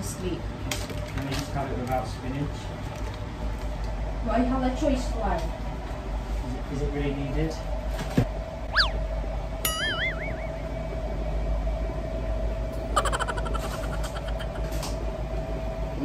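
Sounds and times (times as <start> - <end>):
steady hum: 8.4 - 16.0
swooping whistle: 8.7 - 9.1, 9.7 - 11.0
wobbling boing tone: 9.7 - 10.9.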